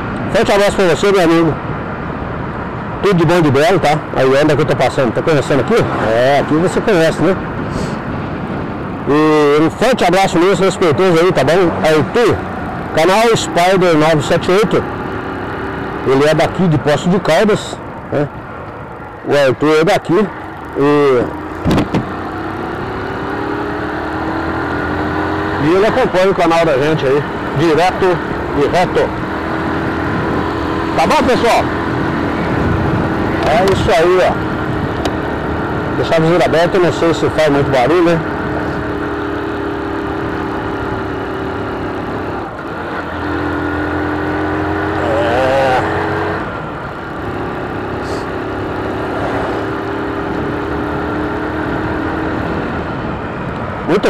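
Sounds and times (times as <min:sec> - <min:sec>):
motorcycle engine humming: 0:00.0 - 0:54.0
road noise: 0:00.0 - 0:54.0
wind noise: 0:21.6 - 0:22.1, 0:29.2 - 0:35.3.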